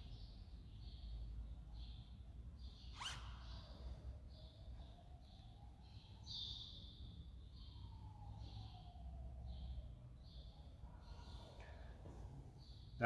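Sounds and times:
small bird chirping: 0.0s - 11.9s.

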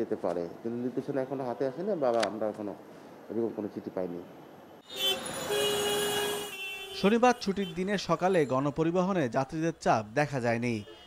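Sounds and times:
street traffic: 0.0s - 11.0s
long vehicle horn blast: 4.8s - 7.9s.

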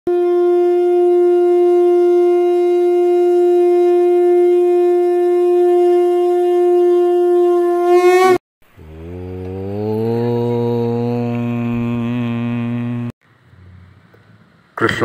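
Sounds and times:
conch shell blown: 0.1s - 8.4s, 9.3s - 13.2s.

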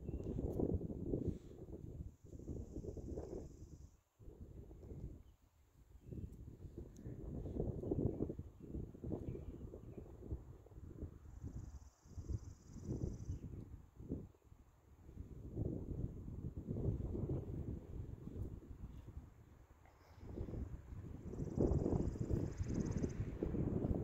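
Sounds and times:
wind buffeting microphone: 0.0s - 5.2s, 6.0s - 14.3s, 15.0s - 24.0s.

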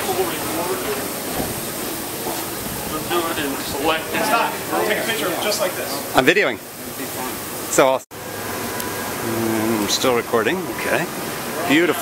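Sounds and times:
steady rushing hiss: 0.0s - 12.0s
indistinct voices: 9.0s - 12.0s.

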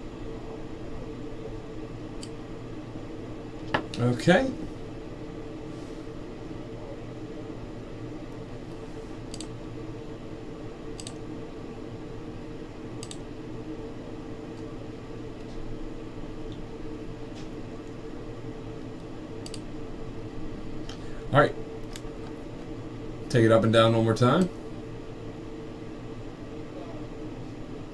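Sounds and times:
steady background hum: 0.0s - 27.9s
computer mouse clicks: 9.3s - 9.5s, 10.9s - 11.2s, 13.0s - 13.2s, 19.4s - 19.7s.

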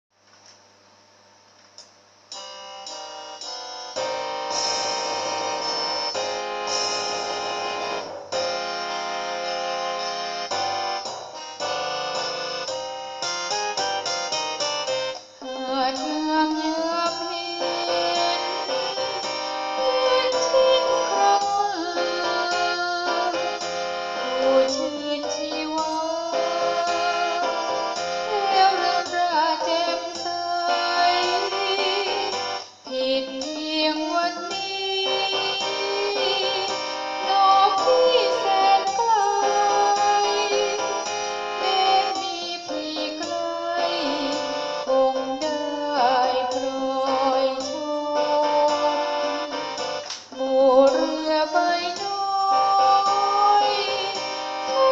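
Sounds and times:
electronic keyboard music: 2.3s - 54.9s
woman singing: 15.4s - 49.7s, 50.3s - 54.9s.

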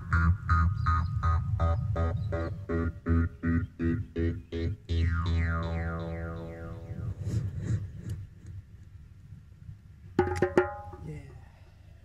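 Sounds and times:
jaw harp drone: 0.0s - 7.4s
sharp percussive strikes: 10.2s - 11.0s.

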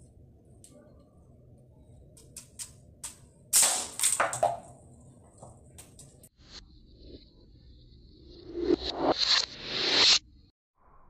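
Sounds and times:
plastic target clattering: 3.6s - 4.8s.

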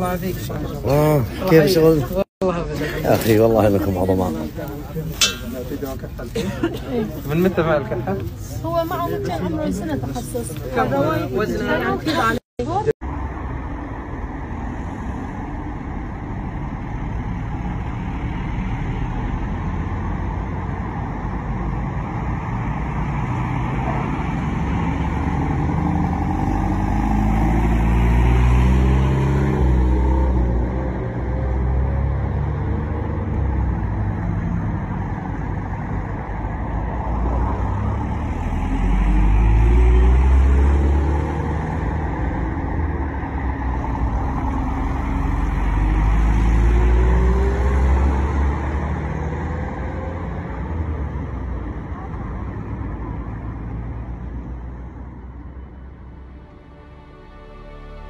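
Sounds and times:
trucks driving past: 0.0s - 58.0s.

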